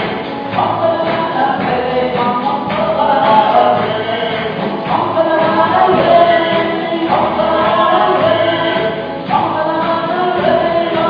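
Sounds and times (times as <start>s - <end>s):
acoustic guitars: 0.0s - 11.0s
many voices singing together: 0.0s - 11.0s.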